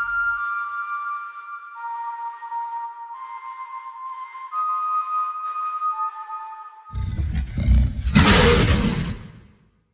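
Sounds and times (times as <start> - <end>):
deep rough growl and roar: 6.9 - 9.6.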